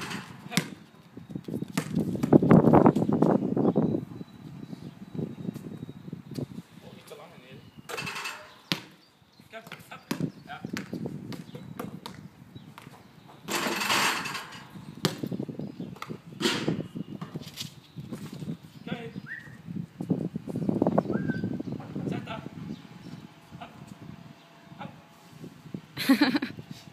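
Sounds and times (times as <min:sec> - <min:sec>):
basketball bouncing on concrete: 0:00.0 - 0:00.9, 0:01.7 - 0:02.5, 0:08.0 - 0:09.0, 0:09.6 - 0:14.0, 0:15.0 - 0:15.4.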